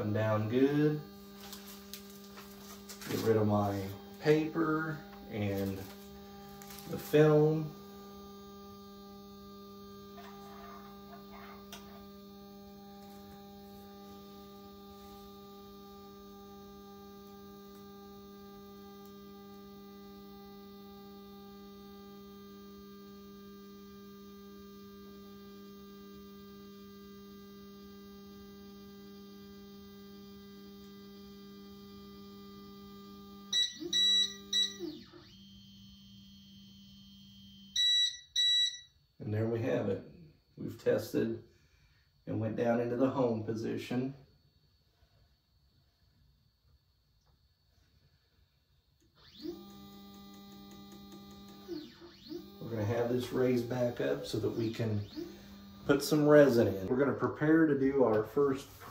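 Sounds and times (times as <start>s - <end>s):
stepper motor whine: 0.0s - 58.9s.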